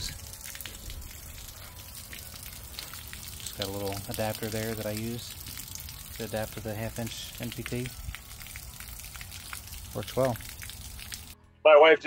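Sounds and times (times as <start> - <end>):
water rushing and splashing: 0.0 - 11.4.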